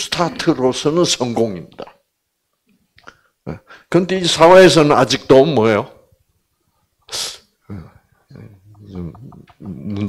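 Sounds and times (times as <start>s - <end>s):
man murmuring: 7.7s - 10.0s.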